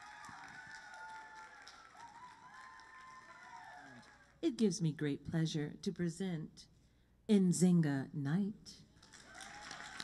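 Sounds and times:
voices cheering: 0.0s - 4.3s
faint audience applause: 0.0s - 4.4s, 8.9s - 10.0s.

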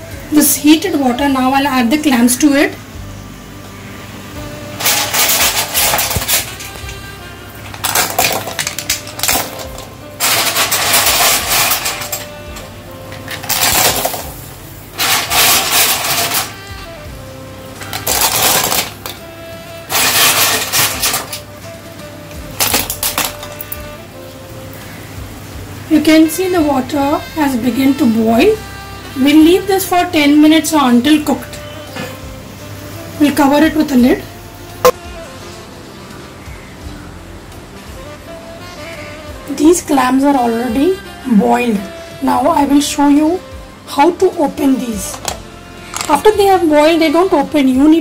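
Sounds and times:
quiet background music: 0.0s - 48.0s
clam shells clattering into pot: 4.8s - 6.8s, 7.7s - 12.4s, 13.1s - 14.4s, 15.0s - 16.6s, 17.8s - 19.2s, 19.9s - 21.4s, 22.6s - 23.8s.

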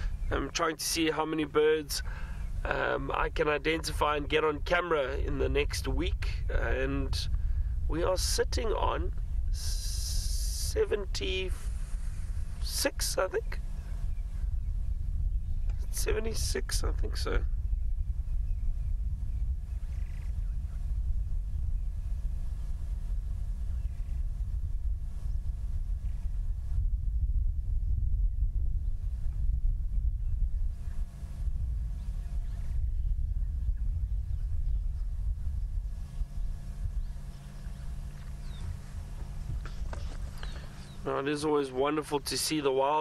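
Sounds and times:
distant bird calls: 0.0s - 3.9s, 9.1s - 26.7s, 30.2s - 42.8s
low rumble of bush ambience: 0.0s - 43.0s.

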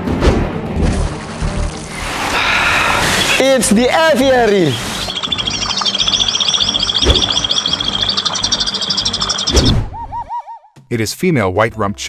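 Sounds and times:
background music: 0.0s - 12.0s
bird trilling high chirps: 4.1s - 10.6s.

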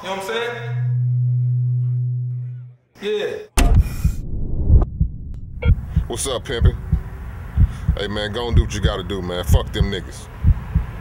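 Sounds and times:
heartbeat-like thumping: 3.6s - 11.0s.

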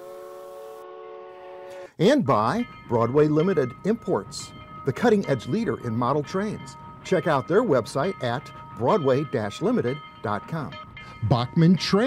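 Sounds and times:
steam locomotive chime whistle: 0.0s - 12.0s.

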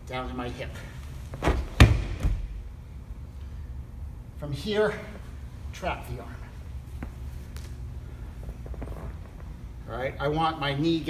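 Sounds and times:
body thudding on a mat: 1.3s - 2.6s.

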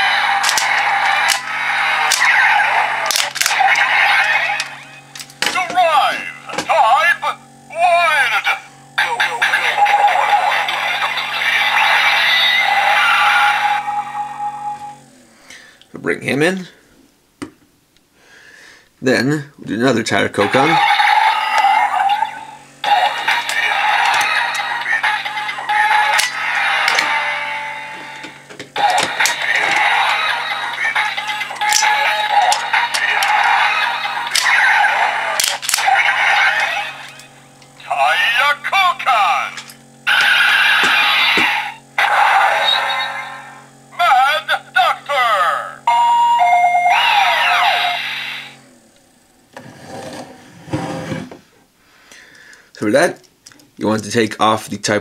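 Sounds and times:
low electronic standby drone: 0.0s - 15.8s, 19.8s - 49.6s
recorded voice announcements: 5.4s - 11.8s, 15.9s - 16.8s, 19.0s - 20.8s, 37.8s - 39.7s, 43.9s - 45.9s, 53.8s - 55.0s
synth music from toy speaker: 9.0s - 14.8s, 20.6s - 37.1s, 45.4s - 48.4s.

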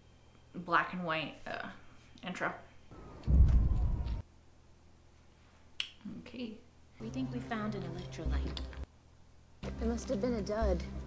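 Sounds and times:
deep rumble: 3.0s - 4.2s.

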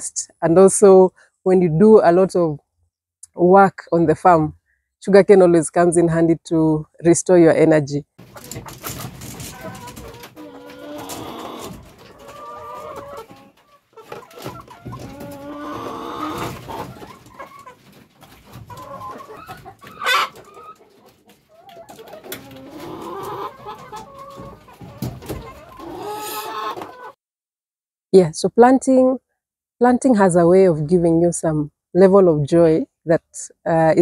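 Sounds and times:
chickens clucking: 8.2s - 27.2s.

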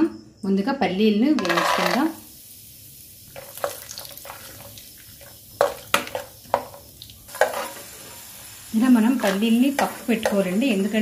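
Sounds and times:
metal spoon scraping a pan: 1.4s - 2.2s, 5.6s - 8.2s, 9.0s - 11.0s
peanuts sizzling in oil: 1.4s - 11.0s.

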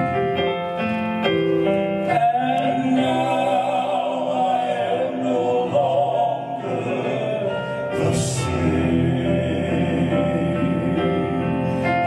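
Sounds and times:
keyboard chords: 0.0s - 12.0s.

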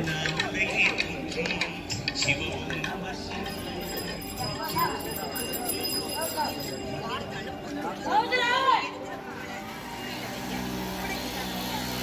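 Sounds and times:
people chattering: 0.0s - 12.0s
traffic: 0.0s - 12.0s.

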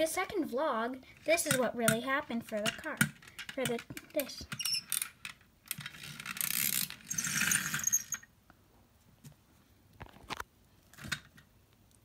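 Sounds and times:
toys rustling and rattling on floor: 1.3s - 8.3s.

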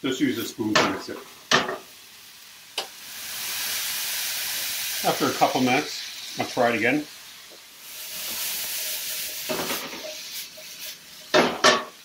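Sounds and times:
vegetables sizzling in a skillet: 0.0s - 12.0s.

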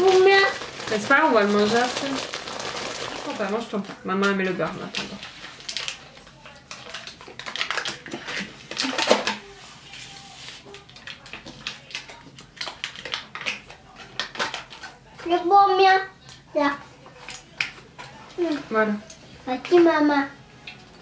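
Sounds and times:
plastic packaging rustling: 0.0s - 15.3s.

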